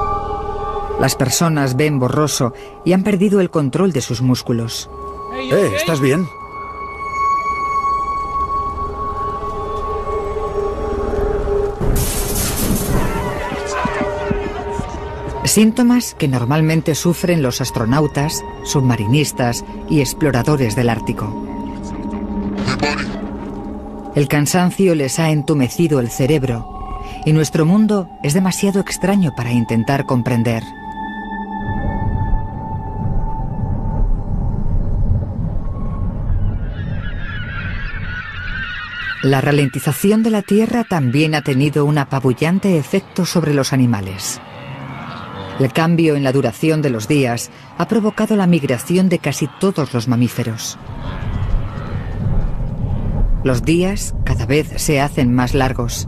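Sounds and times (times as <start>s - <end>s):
sustained high tone: 0.0s - 11.9s, 12.8s - 37.0s
low rumble: 6.3s - 38.5s, 50.7s - 56.0s
flock of birds calling: 36.6s - 42.5s
low steady rumble: 50.8s - 56.0s.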